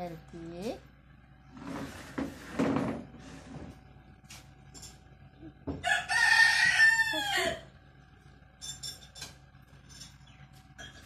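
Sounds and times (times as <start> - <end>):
rooster crowing: 5.7 - 7.8.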